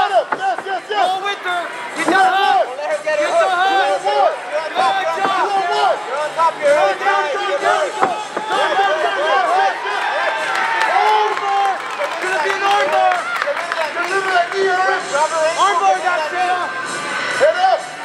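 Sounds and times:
coaches calling instructions: 0:00.0 - 0:10.0
people shouting: 0:00.0 - 0:11.6
crowd cheering: 0:00.0 - 0:18.0.

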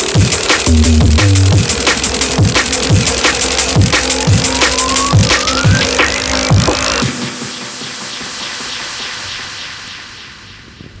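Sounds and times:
jet engine rush: 0:00.0 - 0:11.0.

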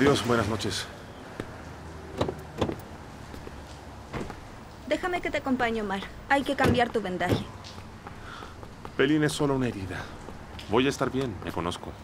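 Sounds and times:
car door knocks: 0:02.2 - 0:02.8, 0:04.1 - 0:04.4, 0:06.6 - 0:07.5.

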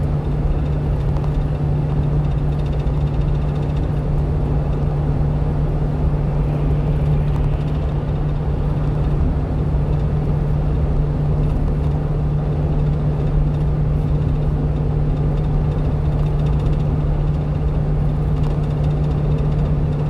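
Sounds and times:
road rumble: 0:00.0 - 0:20.0
truck engine hum: 0:00.0 - 0:20.0.

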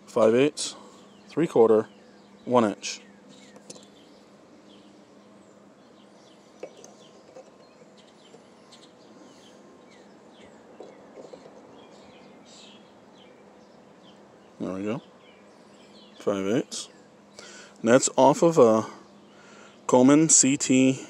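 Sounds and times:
faint bird chirps: 0:00.7 - 0:17.8.

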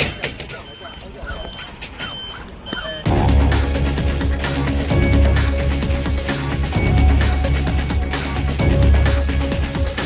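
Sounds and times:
people talking: 0:00.0 - 0:03.0
high electronic beep: 0:00.6 - 0:03.3.

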